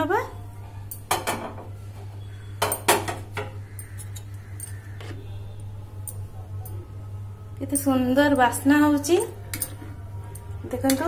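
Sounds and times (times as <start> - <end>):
metal spoon clinking dish: 2.6 - 5.2, 9.2 - 11.0.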